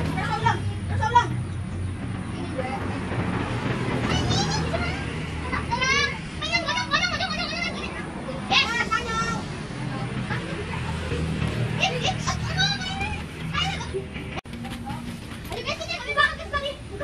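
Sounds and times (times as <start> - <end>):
children playing and chattering: 0.0 - 17.0.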